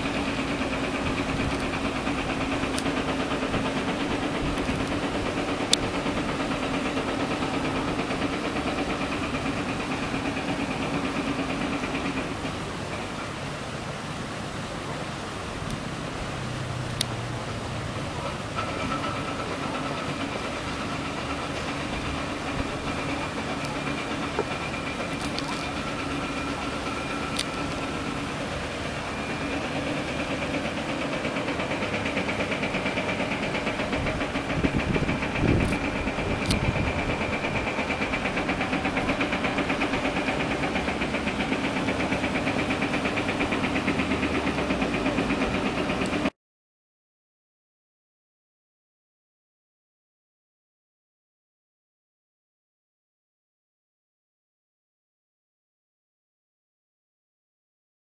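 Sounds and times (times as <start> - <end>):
diesel construction machinery running: 0.0 - 46.3.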